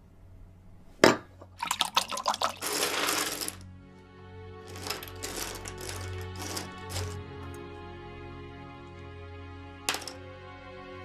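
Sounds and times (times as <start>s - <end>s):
wine pouring into a glass: 1.6s - 3.0s
puzzle pieces clicking on wood: 1.7s - 3.6s, 4.7s - 7.2s, 9.9s - 10.2s
low music drone: 3.2s - 11.0s.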